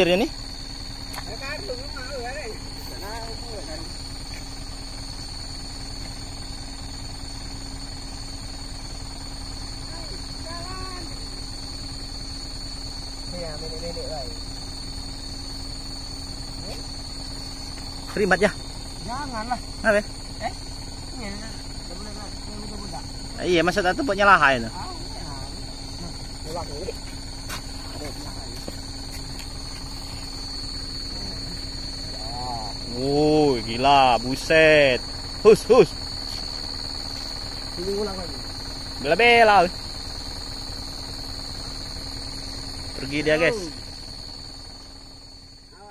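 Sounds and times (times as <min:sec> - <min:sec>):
truck engine idling: 0:00.0 - 0:45.9.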